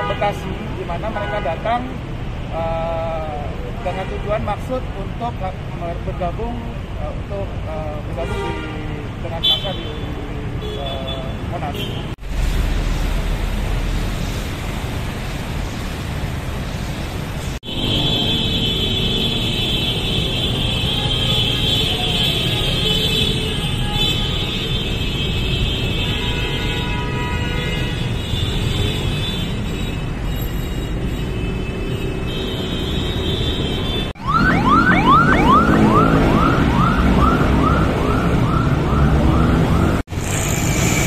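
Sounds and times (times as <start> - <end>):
busy road traffic: 0.0 - 41.0.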